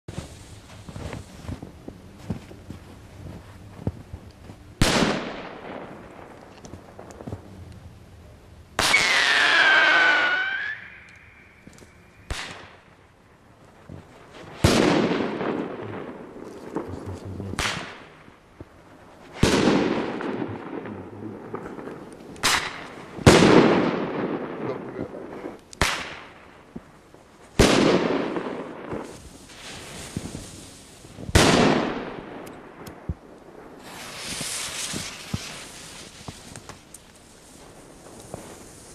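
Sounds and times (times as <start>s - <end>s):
firecrackers exploding: 4.8s - 7.5s, 8.8s - 13.1s, 13.7s - 38.9s
descending firework whistle: 8.8s - 12.8s, 33.8s - 36.7s.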